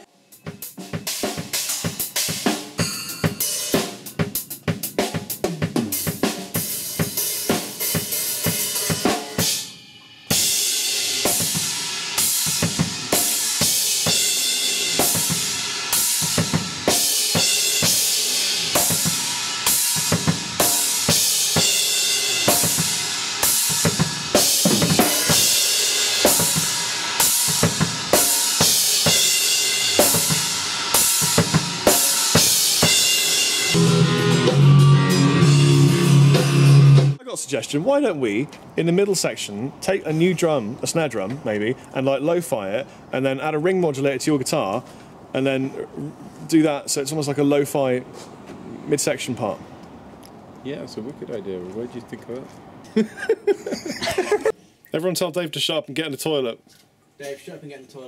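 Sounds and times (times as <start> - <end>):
drum kit playing: 0.0 - 37.2
crash cymbals ringing: 2.8 - 3.8.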